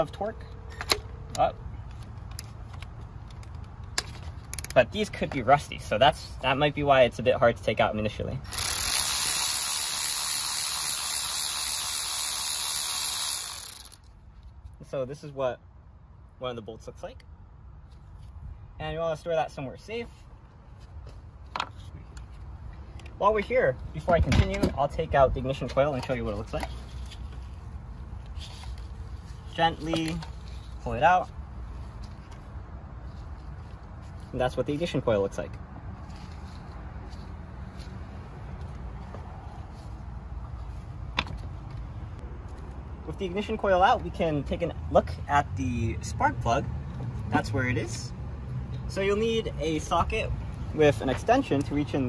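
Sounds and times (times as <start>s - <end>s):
electric ratchet whirring: 8.4s - 14.1s
faint soft rustles: 26.7s - 34.6s, 35.9s - 41.5s.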